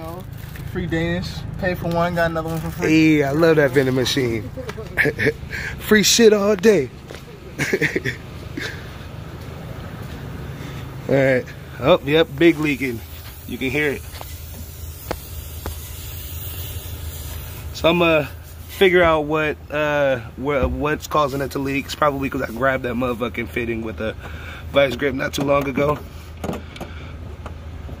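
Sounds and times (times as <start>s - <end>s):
steady low hum: 0.0s - 28.0s
compressed air hissing: 10.6s - 19.0s.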